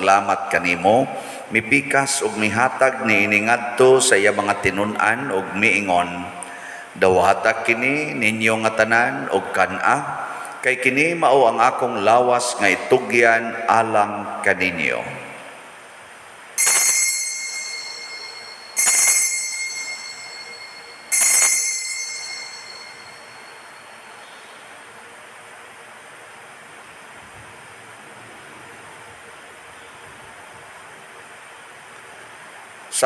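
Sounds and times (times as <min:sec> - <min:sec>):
altar bell ringing: 0:16.6 - 0:24.5.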